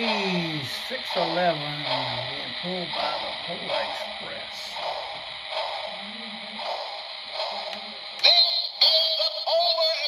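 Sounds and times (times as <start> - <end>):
model train wheels and motor hiss: 0.0 - 10.0.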